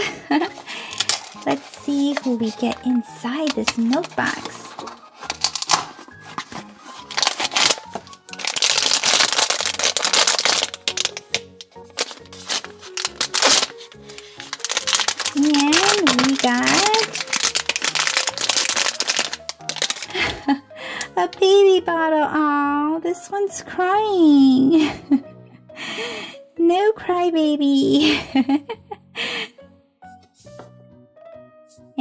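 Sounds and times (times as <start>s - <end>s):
background music: 0.0s - 32.0s
foil packet crinkling and tearing: 0.4s - 20.5s.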